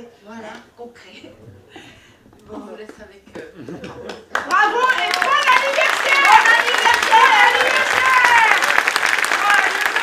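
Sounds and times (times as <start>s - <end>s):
audience applause: 4.1s - 10.0s.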